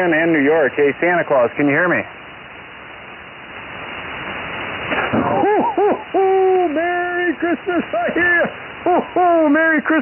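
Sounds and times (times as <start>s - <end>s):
weak voice through static: 0.0s - 2.2s, 6.1s - 10.0s
radio band noise hiss: 0.0s - 10.0s.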